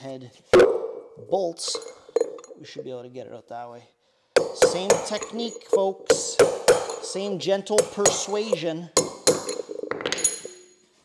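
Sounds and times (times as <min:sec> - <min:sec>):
metal ringing: 0:01.6 - 0:02.7, 0:04.4 - 0:10.8
hammer striking steel: 0:04.4 - 0:09.8.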